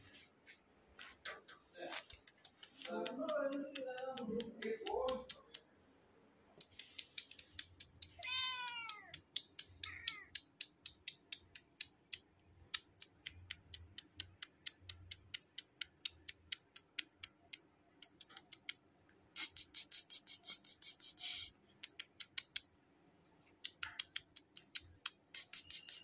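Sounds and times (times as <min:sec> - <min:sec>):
sharp clicks: 0:01.2 - 0:05.7, 0:06.6 - 0:18.8, 0:19.4 - 0:22.8, 0:23.5 - 0:26.0
cat meowing: 0:08.1 - 0:10.4.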